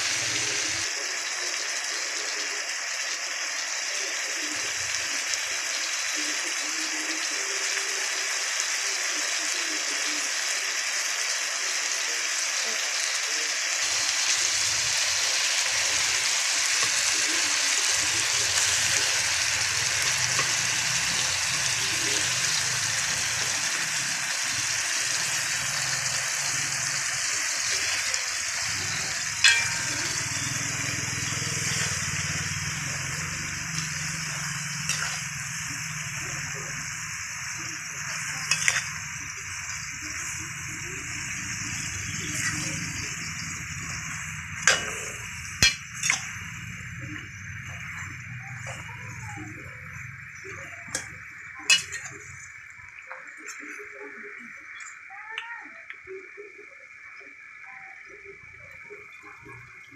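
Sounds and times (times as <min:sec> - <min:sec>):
vegetables sizzling in a pan: 0:00.0 - 0:59.9.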